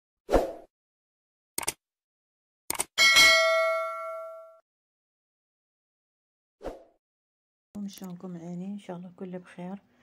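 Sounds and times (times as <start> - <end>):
bell ding: 3.0 - 4.6.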